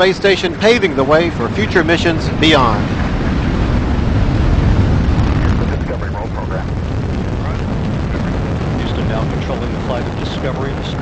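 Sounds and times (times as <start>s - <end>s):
rocket launch roar: 0.0s - 11.0s.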